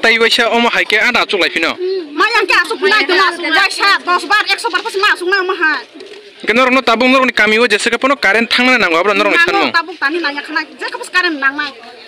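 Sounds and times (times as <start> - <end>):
woman talking loudly: 2.2 - 5.8, 9.6 - 11.8.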